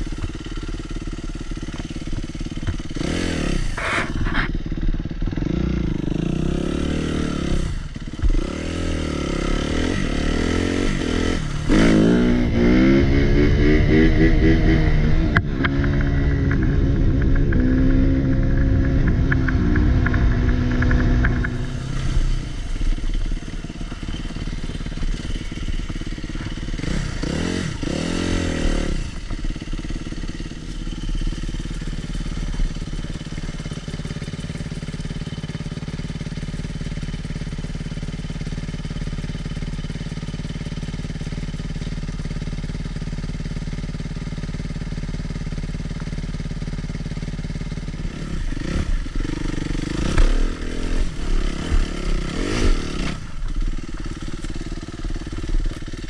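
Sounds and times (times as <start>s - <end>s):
dirt bike engine revving: 0.0s - 35.7s, 46.9s - 56.0s.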